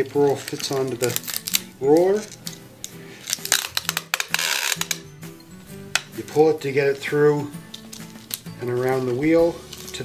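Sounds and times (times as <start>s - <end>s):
packing tape peeling off roll: 0.0s - 5.1s, 7.6s - 10.0s
tape gun clicking and rattling: 3.3s - 5.0s.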